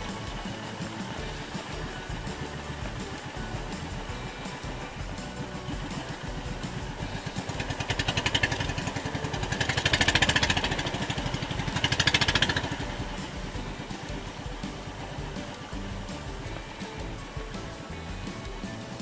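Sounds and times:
boat engine running: 0.0 - 19.0.

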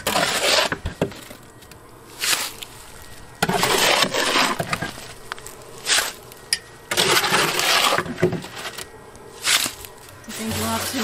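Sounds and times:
shovel scraping concrete mix: 0.0 - 1.4, 2.1 - 6.2, 6.9 - 11.0.

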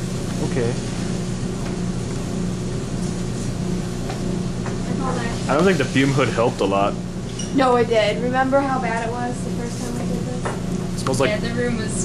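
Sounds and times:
fume hood fan drone: 0.0 - 12.0
chemical reaction hissing: 5.2 - 6.6.

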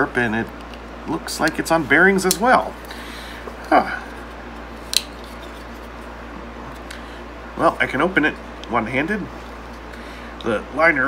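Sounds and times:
folding knife snapping open: 4.9 - 5.2.

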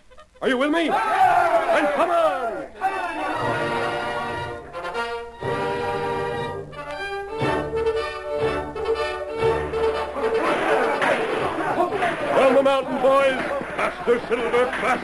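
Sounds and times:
orchestral music with brass: 3.3 - 11.0.

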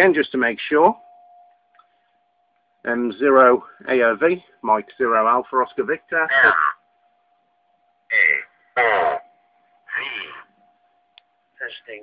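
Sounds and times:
faint steady tone: 0.0 - 12.0
voice through radio speaker: 6.3 - 6.8, 8.1 - 9.3.

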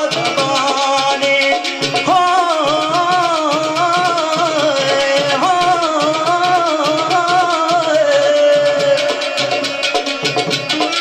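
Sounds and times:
drum beat: 0.0 - 11.0
sitar: 0.0 - 11.0.

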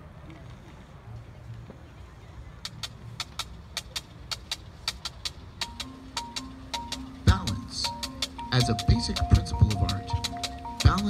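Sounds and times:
sharp percussion clicks: 2.6 - 11.0.

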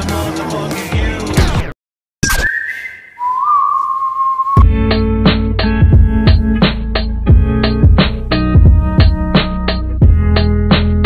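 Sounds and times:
whistled note bending lower: 2.2 - 4.7.

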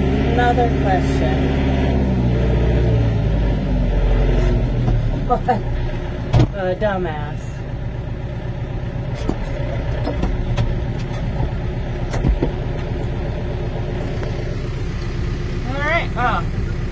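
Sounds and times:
tractor engine running: 0.0 - 16.9.

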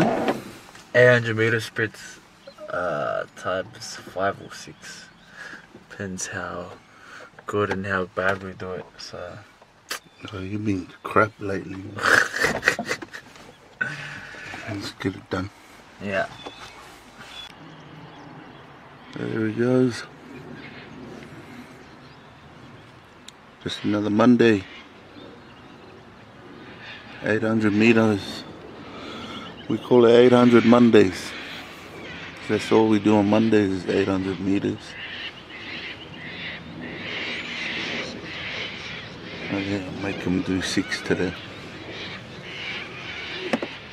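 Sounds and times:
birds chattering: 0.0 - 43.9
man laughing: 11.8 - 14.8.

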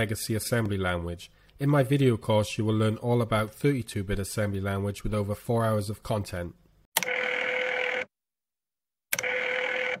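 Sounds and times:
telephone bell ringing: 7.0 - 8.1, 9.2 - 10.0.

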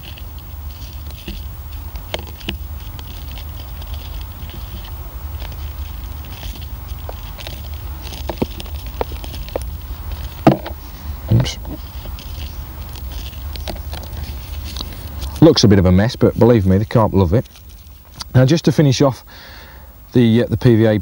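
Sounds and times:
small crackles and clicks: 0.0 - 10.8, 11.7 - 15.5
low steady rumble: 0.0 - 21.0.

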